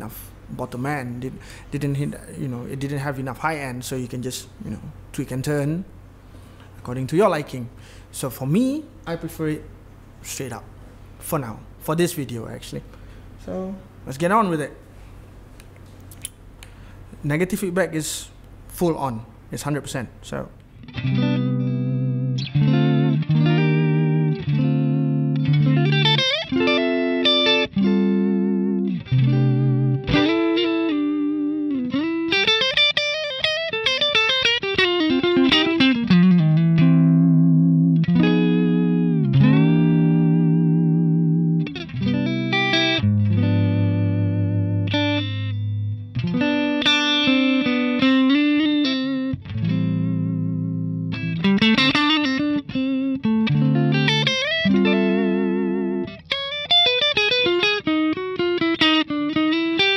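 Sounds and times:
electric guitar chords and phrases: 20.6s - 59.9s.

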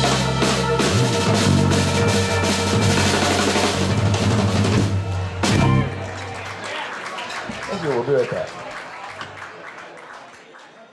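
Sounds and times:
drum kit: 0.0s - 6.3s.

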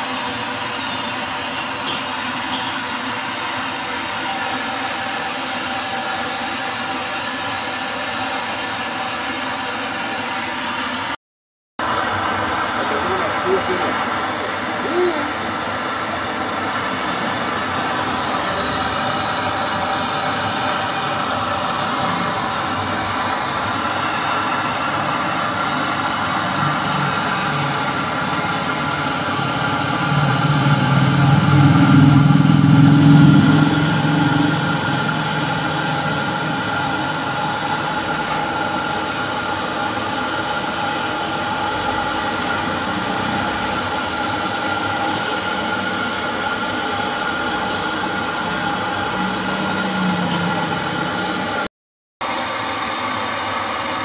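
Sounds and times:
gas stove burner roaring: 11.8s - 54.0s.

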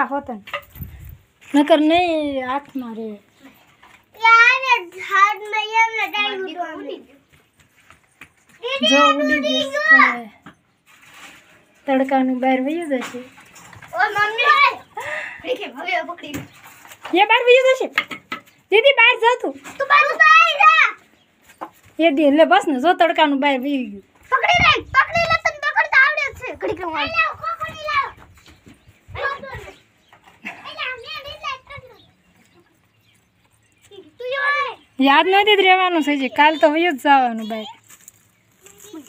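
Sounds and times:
faint outdoor background noise: 0.0s - 39.0s.

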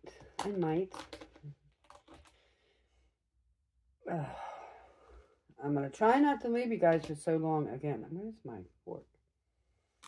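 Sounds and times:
woman sighing: 4.0s - 5.0s.

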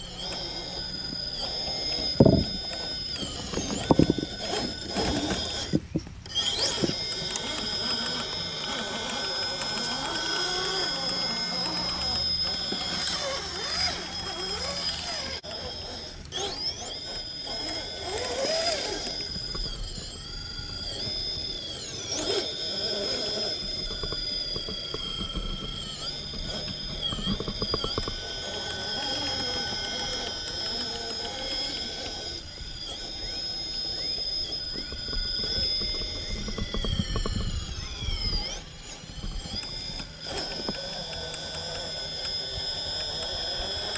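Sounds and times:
electric motor whining: 0.0s - 43.9s.

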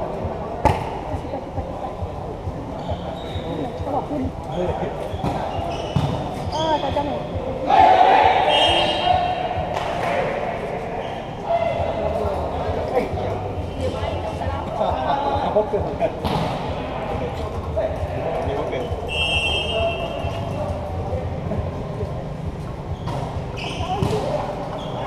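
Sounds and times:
echoing indistinct voices: 0.0s - 25.0s
players shouting: 7.6s - 10.4s.

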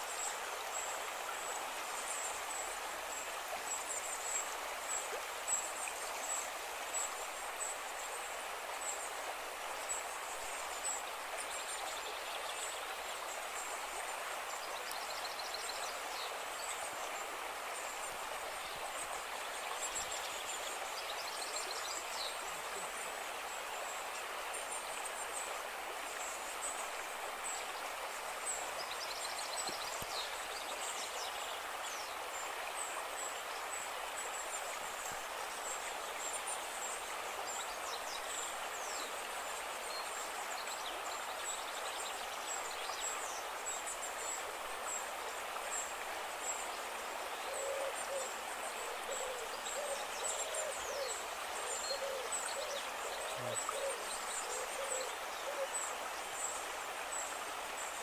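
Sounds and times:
stream running over stones: 0.0s - 58.0s
bird hooting calls: 47.5s - 55.7s.

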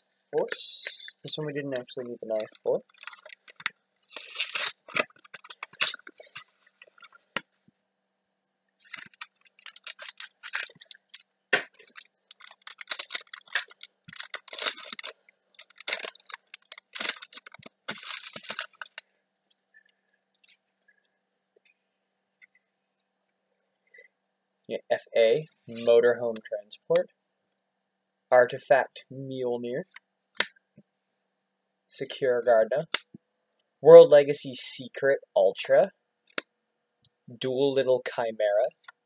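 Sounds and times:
foil wrapper crinkling and tearing: 2.3s - 7.2s, 8.8s - 19.0s.

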